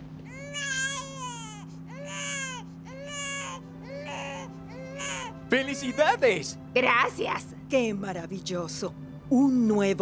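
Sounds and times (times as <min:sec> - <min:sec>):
newborn baby crying: 0:00.3 - 0:06.4.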